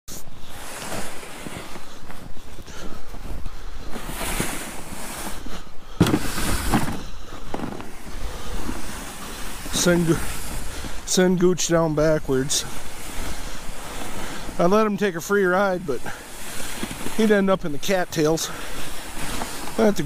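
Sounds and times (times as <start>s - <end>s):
footsteps crunching through snow: 0.1s - 20.0s
plastic sled scraping over snow: 0.1s - 20.0s.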